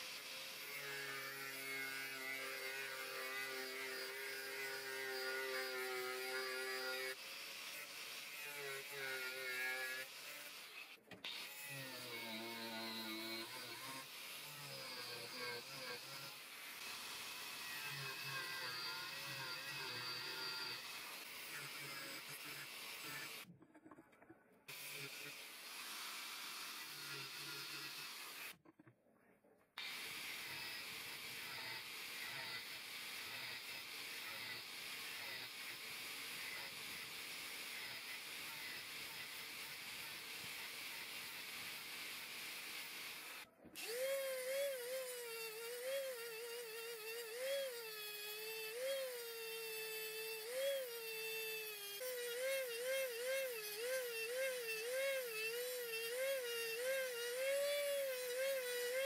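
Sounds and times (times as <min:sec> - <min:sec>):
angle grinder cutting steel: 0:00.0 - 0:23.5, 0:24.7 - 0:28.6, 0:29.8 - 0:59.0.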